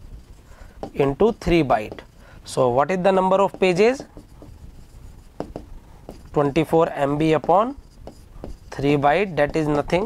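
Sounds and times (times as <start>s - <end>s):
pen writing on a board: 0.0s - 2.2s, 2.9s - 10.0s.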